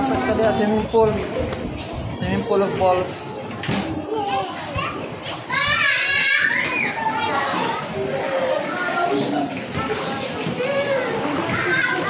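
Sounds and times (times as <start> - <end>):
children playing and calling out: 3.8 - 12.0
high-pitched child's voice: 4.0 - 7.8.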